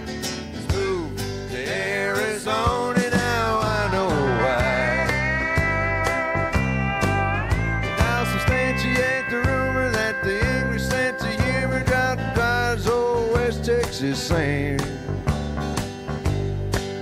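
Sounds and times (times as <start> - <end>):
rhythm guitar: 0.0 - 17.0
steady drum beat: 2.6 - 17.0
lead guitar bending notes: 3.0 - 17.0.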